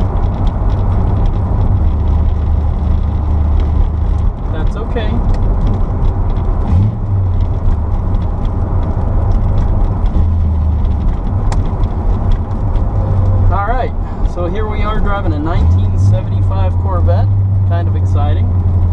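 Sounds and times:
loose car parts rattling: 0:00.0 - 0:15.6
car engine and road drone: 0:00.0 - 0:18.9.

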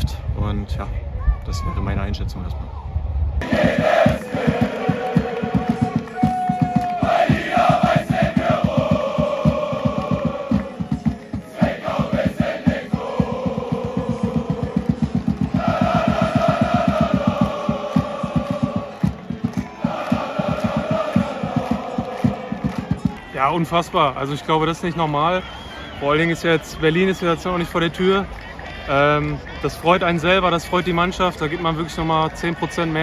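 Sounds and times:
crowd chanting in unison: 0:03.4 - 0:23.3
fast steady drumbeat: 0:03.4 - 0:23.3.

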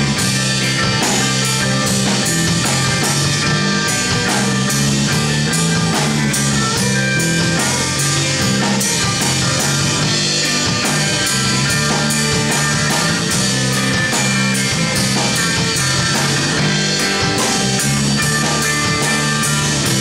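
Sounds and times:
bass guitar: 0:00.0 - 0:20.0
drum kit: 0:00.0 - 0:20.0
electric guitars: 0:00.0 - 0:20.0.

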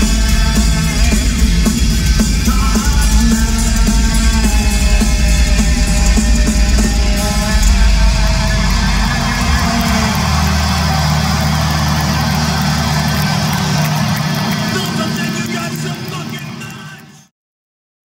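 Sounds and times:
crowd noise: 0:00.0 - 0:17.3.

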